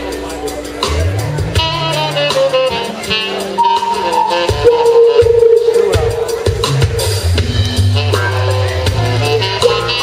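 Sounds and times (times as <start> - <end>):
drum kit: 0.0 - 10.0
keyboard notes: 2.7 - 8.3
bass notes: 3.4 - 10.0
electric guitar: 3.6 - 7.7.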